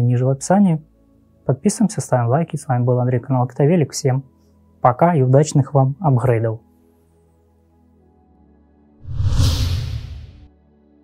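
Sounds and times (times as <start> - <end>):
soft background music: 0.0 - 11.0
whoosh with deep rumble: 9.0 - 10.5.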